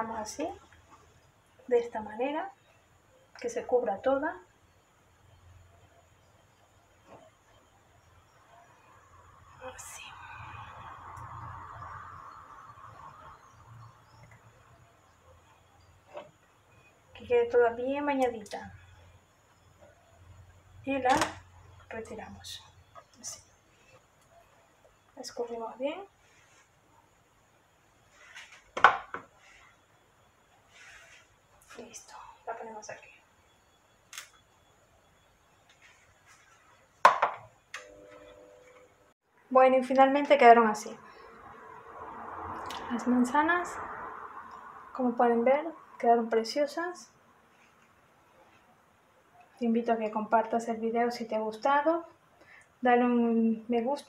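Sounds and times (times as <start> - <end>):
faint steady ringing tone: 0.0 - 28.3, 29.4 - 39.2
knocks of hard objects: 28.8 - 29.3, 37.0 - 37.5.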